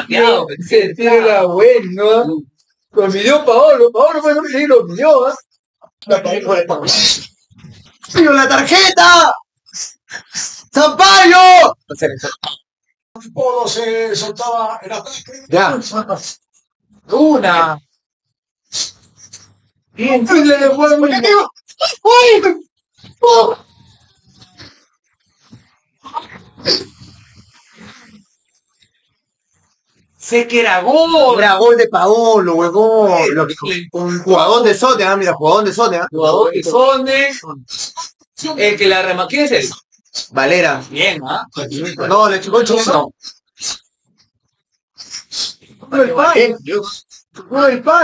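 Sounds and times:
man speaking: 0.0s - 9.5s, 10.6s - 12.4s, 13.2s - 18.0s, 19.9s - 23.8s, 30.2s - 43.4s, 45.8s - 48.0s.

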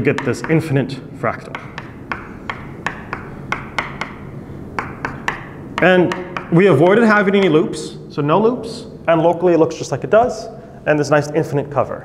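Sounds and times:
chalk tapping on blackboard: 0.0s - 0.8s, 1.4s - 7.6s.

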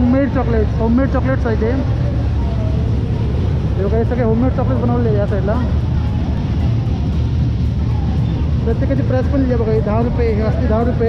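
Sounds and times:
faint crowd voices: 0.0s - 11.0s
fairground low rumble: 0.0s - 11.0s.

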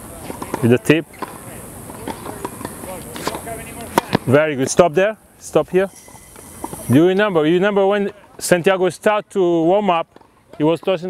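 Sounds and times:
tennis racket hitting ball: 0.2s - 4.3s.

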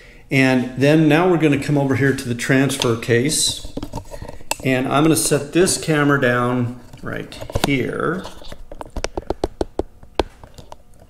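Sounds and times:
handling clicks and taps: 6.9s - 11.0s.

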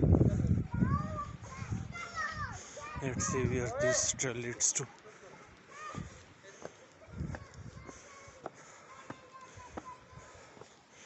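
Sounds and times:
children talking and calling out: 0.0s - 11.0s
narration: 2.6s - 5.5s.

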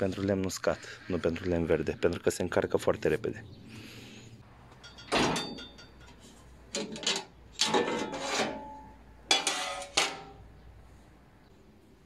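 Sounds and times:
metal clanks and scrapes: 4.7s - 10.4s.

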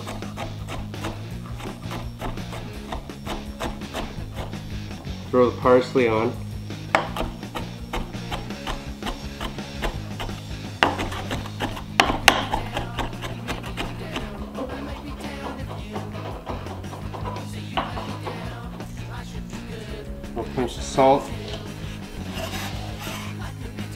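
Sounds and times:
knife chopping on cutting board: 0.0s - 4.7s, 6.9s - 18.5s
background music: 0.0s - 23.9s.

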